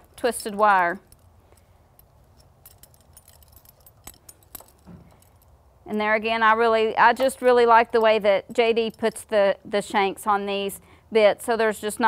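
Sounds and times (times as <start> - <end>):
metal horse bits clinking: 0.0 - 9.4
low steady hum: 0.0 - 12.0.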